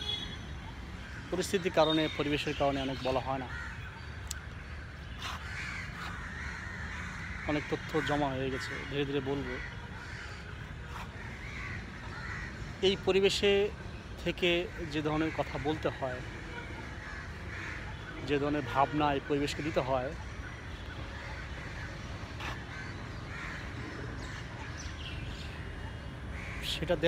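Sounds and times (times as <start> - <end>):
crows cawing: 1.0 - 13.5, 14.6 - 25.6, 26.3 - 27.0.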